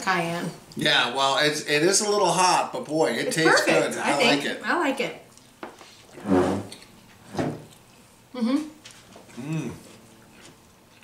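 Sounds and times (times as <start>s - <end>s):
person humming mm: 8.4s - 9.9s.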